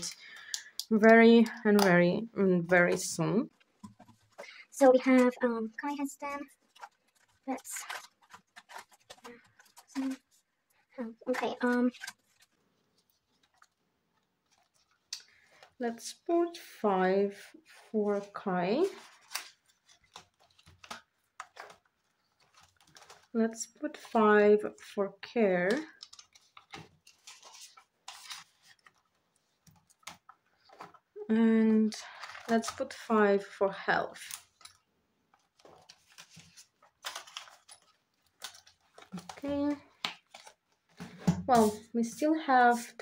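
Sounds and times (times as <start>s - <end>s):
plastic binder pages turning: 0.0s - 16.5s, 18.1s - 33.4s, 34.1s - 43.0s
paper banknote rustling: 3.6s - 10.4s, 25.8s - 31.0s.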